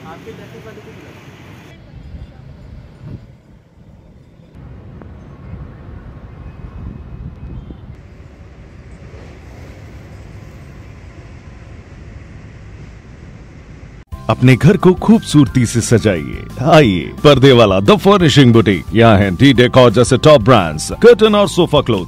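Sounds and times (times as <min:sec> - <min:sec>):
low outdoor rumble: 0:01.6 - 0:14.1.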